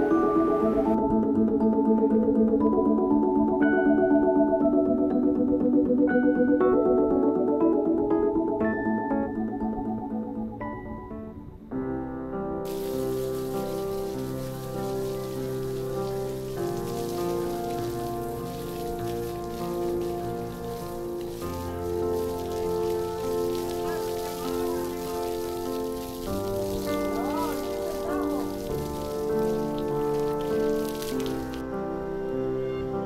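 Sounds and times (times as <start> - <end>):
water spraying from a hose: 12.7 - 31.7.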